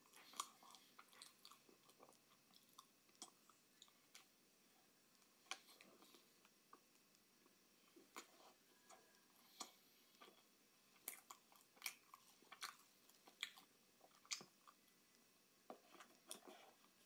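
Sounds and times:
chewing with wet mouth clicks: 0.0 - 4.3, 8.1 - 15.0.

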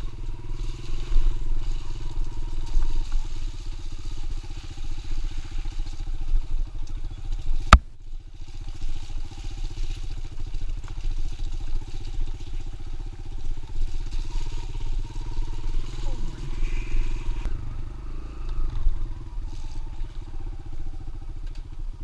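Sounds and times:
dirt bike engine running: 0.0 - 22.0.

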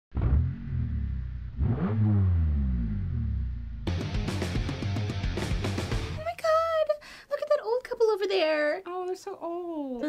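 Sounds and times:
car engine revving: 0.1 - 6.1
music: 3.8 - 6.3.

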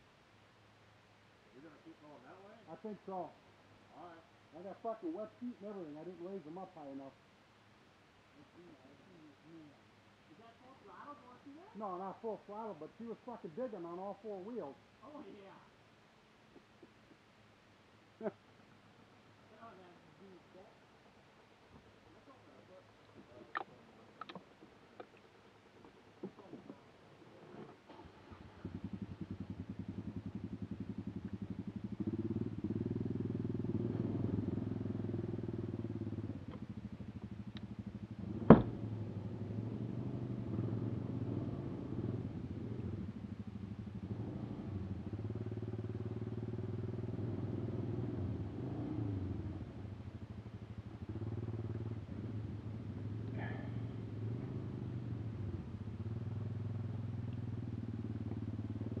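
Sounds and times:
atv engine idling: 18.1 - 59.0.

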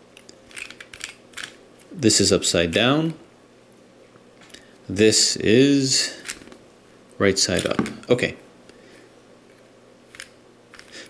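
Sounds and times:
plastic puzzle clicking: 0.2 - 1.6.

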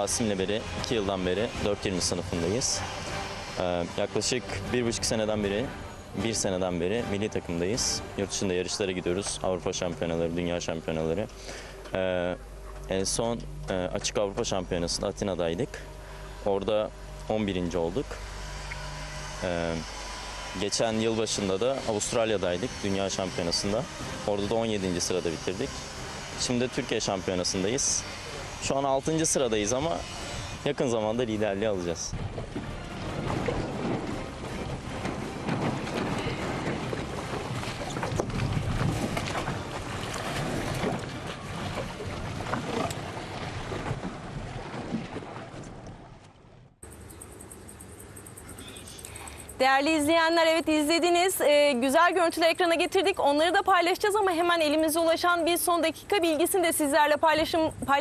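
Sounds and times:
steady low hum: 0.0 - 44.4
water splashing: 0.0 - 46.8
wind buffeting microphone: 32.0 - 46.2.

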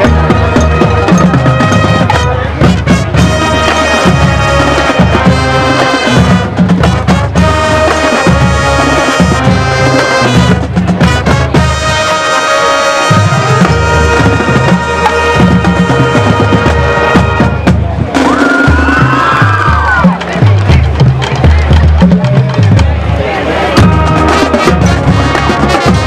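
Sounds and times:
marching band playing: 0.0 - 26.0.

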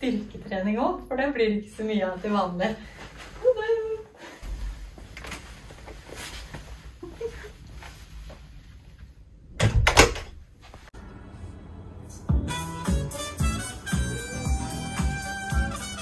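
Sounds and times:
door closing with loud clunk: 9.6 - 10.4
door handling noise: 9.6 - 10.4.

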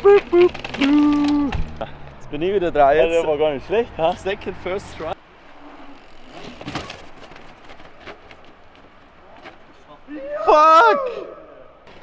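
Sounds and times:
bike rolling on concrete: 0.0 - 10.1.

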